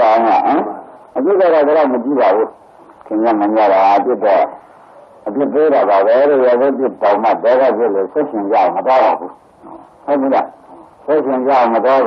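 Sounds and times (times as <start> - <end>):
man preaching in sing-song phrases: 0.0 - 4.6, 5.2 - 9.3, 10.1 - 12.0.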